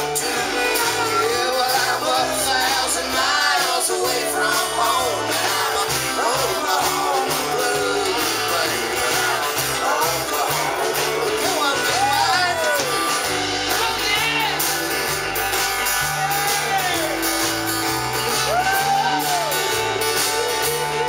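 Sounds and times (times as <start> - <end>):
person singing: 0.0 - 14.8
acoustic guitar: 0.0 - 21.0
drums: 0.0 - 21.0
electric guitar: 0.0 - 21.0.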